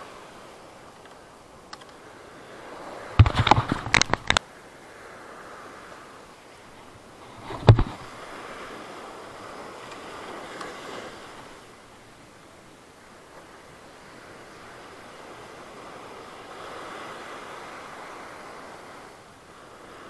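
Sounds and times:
sea surf washing up beach: 0.0 - 20.0.

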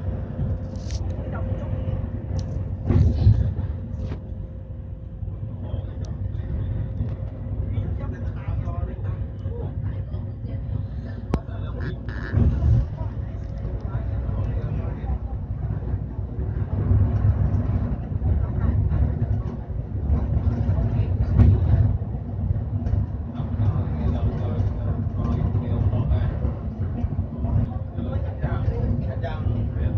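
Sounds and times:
bus engine rumble: 0.0 - 29.9
people talking: 0.7 - 4.2, 5.3 - 29.9.

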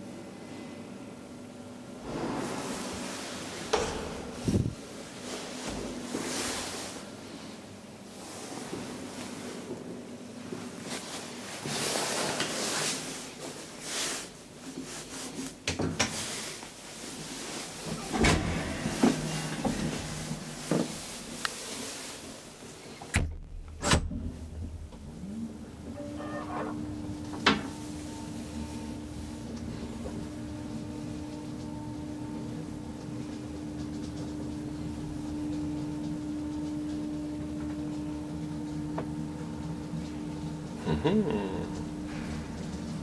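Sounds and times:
elevator drive hum: 1.1 - 8.5, 16.7 - 43.0
elevator door clatter: 2.0 - 5.1, 17.7 - 21.8, 23.0 - 28.4.

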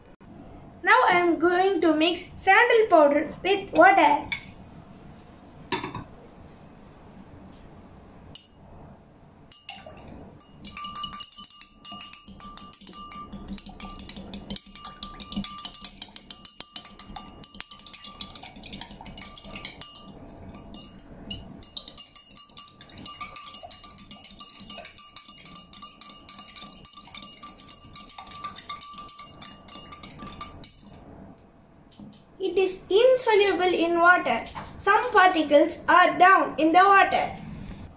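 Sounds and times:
glass ringing tone: 9.5 - 14.0, 19.4 - 31.0
spoon clinking in glass: 9.5 - 31.0.

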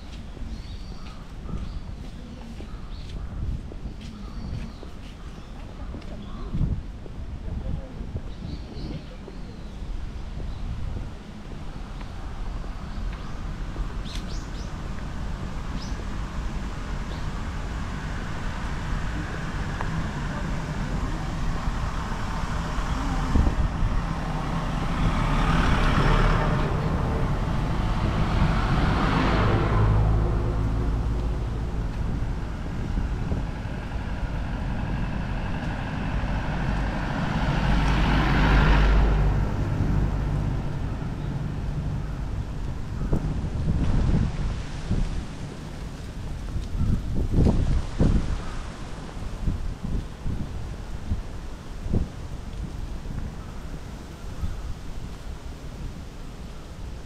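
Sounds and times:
road traffic passing: 0.0 - 57.0
small truck passing: 15.1 - 46.4.

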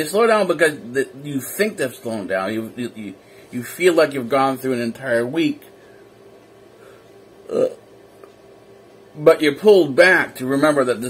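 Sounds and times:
man burping: 7.4 - 7.8.

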